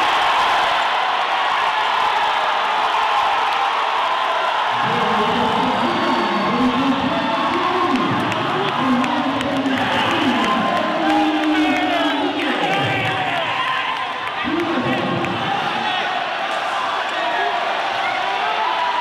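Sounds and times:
crowd cheering: 0.0s - 19.0s.

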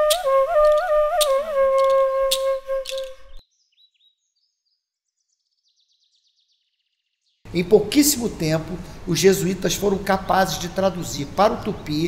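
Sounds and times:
wooden flute long note: 0.0s - 3.4s
faint high bird chirps: 0.0s - 7.4s.

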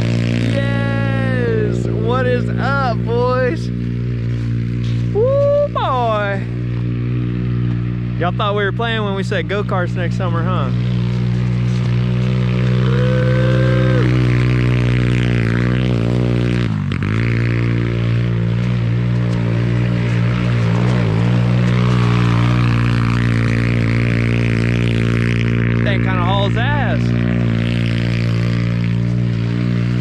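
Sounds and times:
go-kart engine droning: 0.0s - 30.0s.

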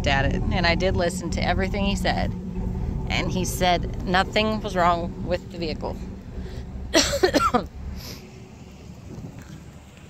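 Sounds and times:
low rumble: 0.0s - 10.0s
wind buffeting microphone: 0.0s - 10.0s
woman coughing: 6.9s - 7.7s.

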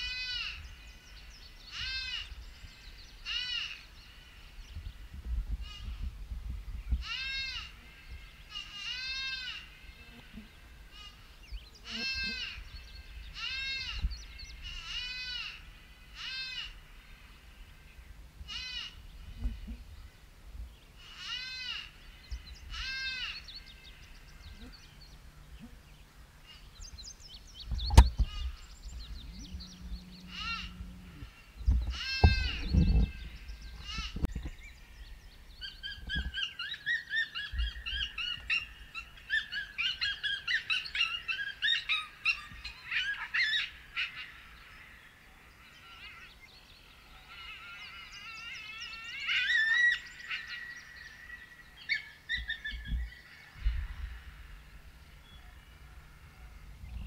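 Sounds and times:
songbirds chirping: 0.0s - 57.0s
dull thumps near microphone: 27.6s - 28.5s.

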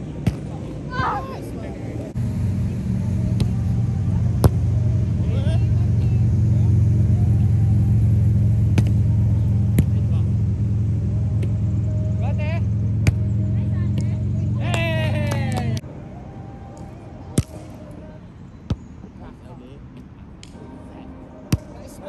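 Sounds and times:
engine humming: 0.0s - 22.0s
volleyball hit by hand: 4.4s - 4.6s, 8.7s - 9.0s, 9.7s - 10.0s, 13.0s - 13.3s, 17.4s - 17.6s.

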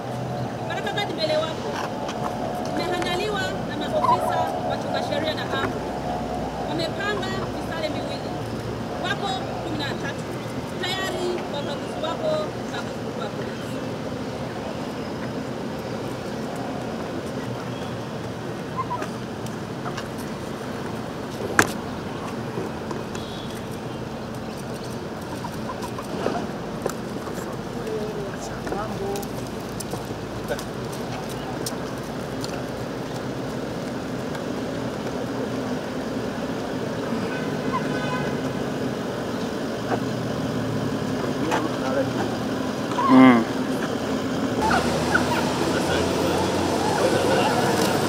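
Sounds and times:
distant voices: 0.0s - 48.0s
outdoor background noise: 0.0s - 48.0s
vehicle engines idling: 0.0s - 48.0s.

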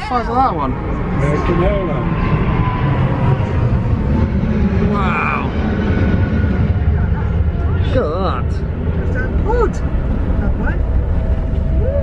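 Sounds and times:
electric pod running rumble: 0.0s - 12.0s
faint steady whine: 0.0s - 12.0s.

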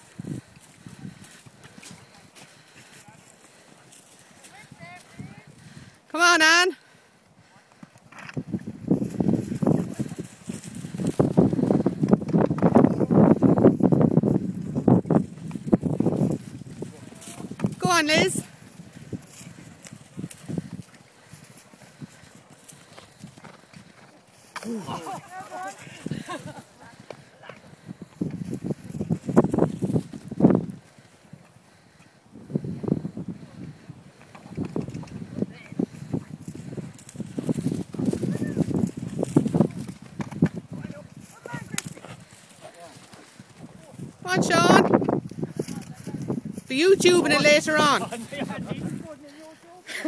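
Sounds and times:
horse hooves clip-clopping: 0.0s - 6.1s, 7.2s - 32.3s, 33.0s - 44.2s.

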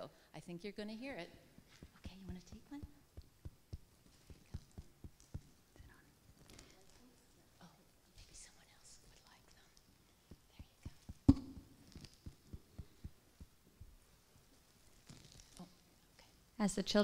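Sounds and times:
people whispering: 5.7s - 11.2s.

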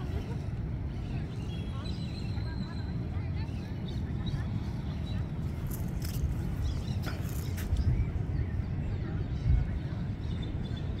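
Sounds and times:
faint distant voices: 0.0s - 11.0s
wind rumbling on microphone: 0.0s - 11.0s.

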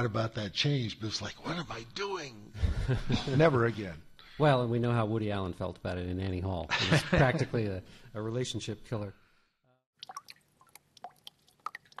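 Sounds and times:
faint drip-like clicks: 10.0s - 12.0s.

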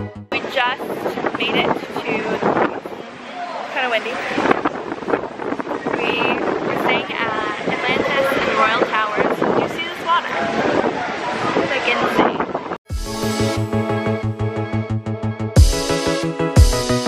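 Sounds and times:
women talking: 0.3s - 3.0s, 3.7s - 4.4s, 5.9s - 10.6s, 11.6s - 12.5s
wind gusting on microphone: 0.3s - 12.8s.

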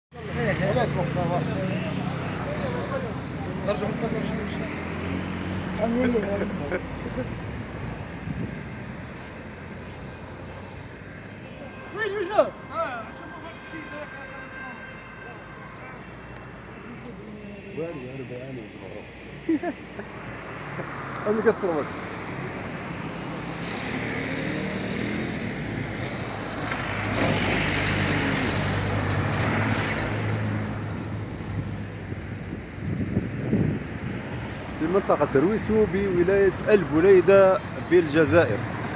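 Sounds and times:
road noise: 0.1s - 38.9s.

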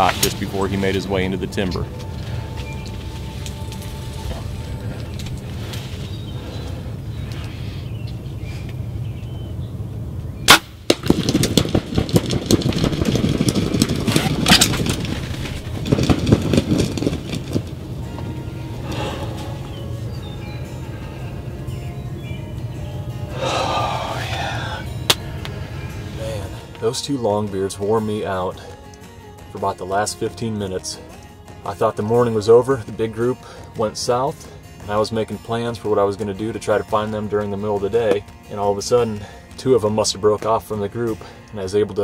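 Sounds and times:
background music: 0.0s - 7.8s, 13.4s - 42.0s
bow shot crack: 10.5s - 12.5s, 25.0s - 25.5s
bird rustling and flapping: 11.1s - 19.6s.

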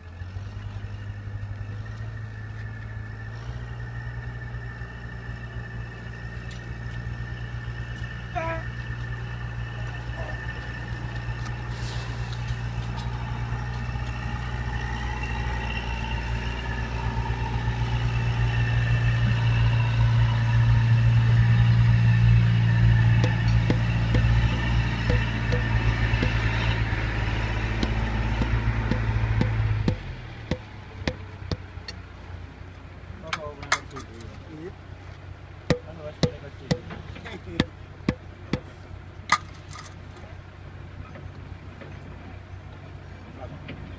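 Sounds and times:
engine running steadily: 0.0s - 43.9s.

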